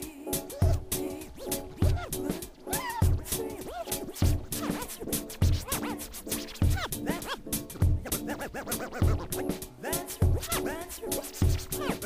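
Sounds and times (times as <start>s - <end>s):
hi-hat ticks: 0.0s - 12.0s
kick drum: 0.6s - 1.0s, 1.7s - 2.2s, 3.0s - 3.3s, 4.2s - 4.6s, 5.4s - 5.7s, 6.6s - 7.0s, 7.7s - 8.2s, 9.0s - 9.4s, 10.2s - 10.5s
swooping synth sounds: 1.4s - 9.6s.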